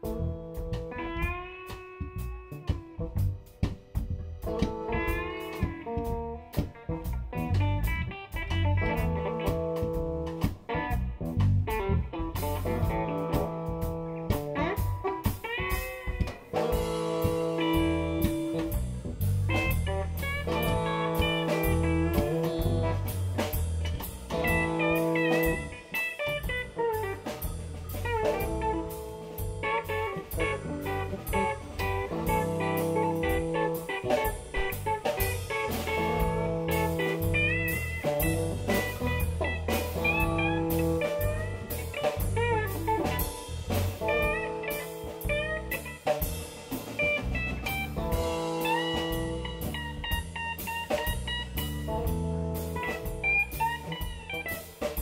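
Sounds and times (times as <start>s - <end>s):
bass line: 0.0s - 55.0s
drum kit: 0.0s - 55.0s
electric guitar lead: 0.0s - 55.0s
cymbals: 11.8s - 55.0s.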